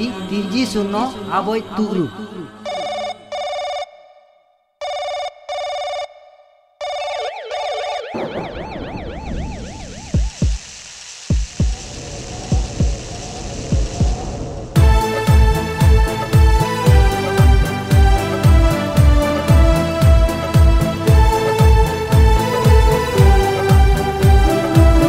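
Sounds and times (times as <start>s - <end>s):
telephone ringing: 2.6s - 8.8s
warbling siren-like tone: 6.8s - 10.4s
heartbeat thumps: 9.4s - 10.7s
steady hiss: 9.9s - 14.8s.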